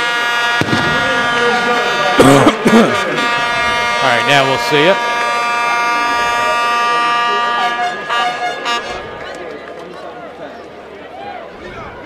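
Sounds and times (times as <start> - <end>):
horn blast: 0.0 - 9.6
crowd noise: 0.0 - 12.0
distant voices: 0.0 - 12.0.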